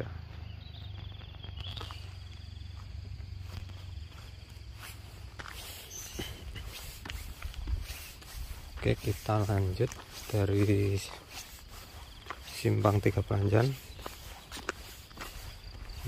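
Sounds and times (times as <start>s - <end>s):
footsteps on gravel: 0.0s - 16.0s.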